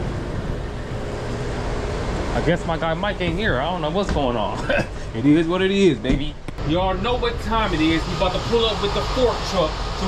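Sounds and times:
faint hum: 0.0s - 10.0s
low rumble and hiss: 0.0s - 10.0s.

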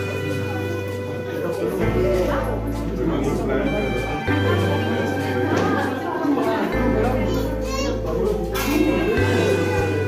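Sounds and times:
adults and children talking: 0.0s - 10.0s.

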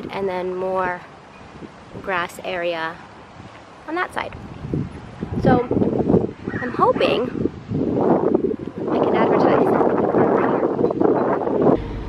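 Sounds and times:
wind rushing over microphone: 4.2s - 12.0s
low hum inside a car: 11.8s - 12.0s.

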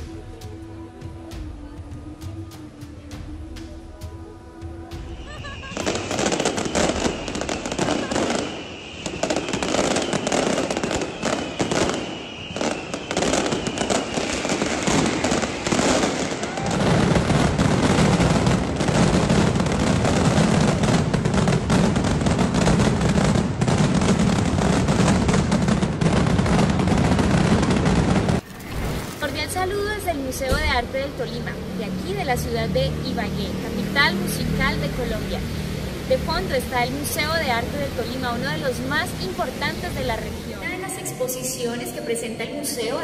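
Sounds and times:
falling firework whistles: 5.0s - 21.0s
barrage of explosions: 5.0s - 40.8s
firework bangs and crackles: 5.0s - 41.6s.

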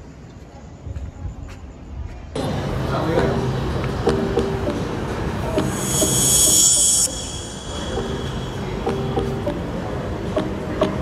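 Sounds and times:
soft background music: 2.4s - 11.0s
loud high hiss: 5.6s - 9.2s.

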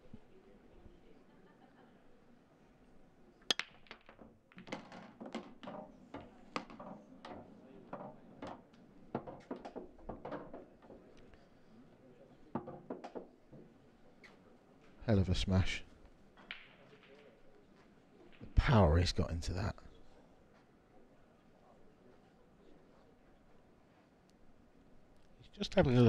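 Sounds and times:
pool balls clicking and knocking: 3.5s - 11.4s, 12.4s - 14.4s, 16.2s - 19.0s.

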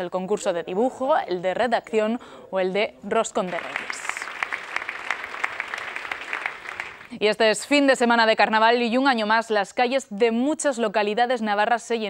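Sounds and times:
audience applauding: 3.5s - 7.2s.

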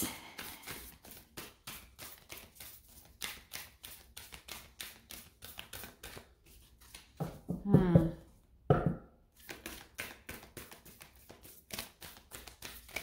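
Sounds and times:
cards being shuffled by hand: 0.1s - 7.5s, 9.4s - 13.0s.

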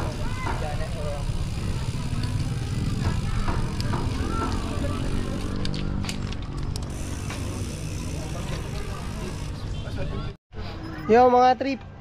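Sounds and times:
people talking: 0.0s - 5.6s.

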